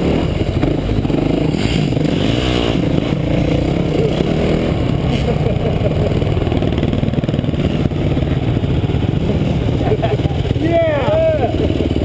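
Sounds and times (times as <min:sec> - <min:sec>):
dirt bike engine revving: 0:00.0 - 0:12.0.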